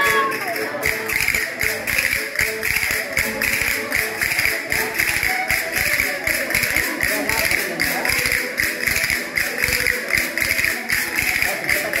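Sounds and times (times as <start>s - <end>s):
button accordion folk tune: 0.0s - 12.0s
percussive beat: 0.0s - 12.0s.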